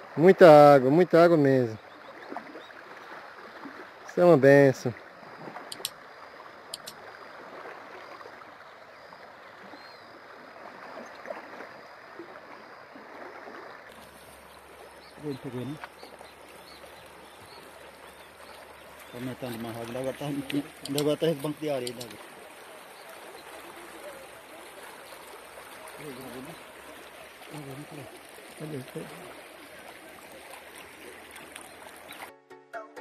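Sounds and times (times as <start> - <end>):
river water rushing: 0.0 - 32.3.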